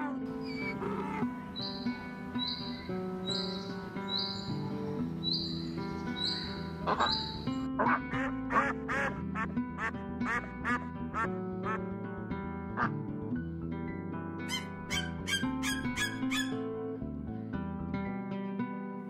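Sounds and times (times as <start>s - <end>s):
ducks quacking: 0.0s - 11.9s, 12.8s - 13.0s, 14.5s - 16.6s
background music: 0.0s - 19.0s.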